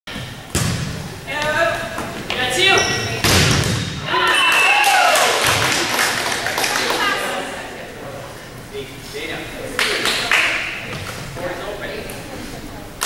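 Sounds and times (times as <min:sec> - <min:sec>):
volleyball struck hard: 0:00.5 - 0:01.0, 0:03.2 - 0:04.1
girls shouting and cheering: 0:04.0 - 0:05.4.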